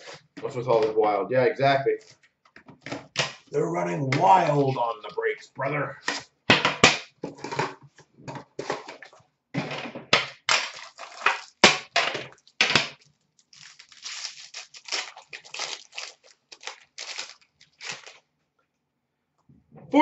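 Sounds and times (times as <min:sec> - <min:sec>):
foil wrappers crinkling: 0:10.5 - 0:18.3.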